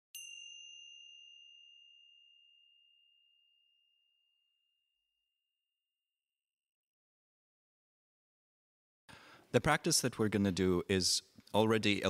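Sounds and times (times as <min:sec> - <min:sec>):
meditation bell ringing: 0:00.1 - 0:05.4.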